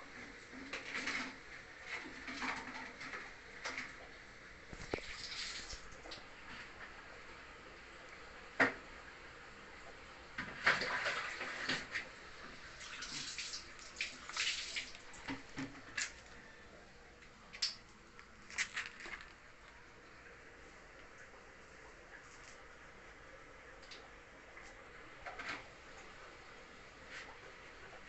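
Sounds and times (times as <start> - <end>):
water splashing and dripping: 4.8 - 6.3, 9.8 - 12.1, 12.7 - 16.3.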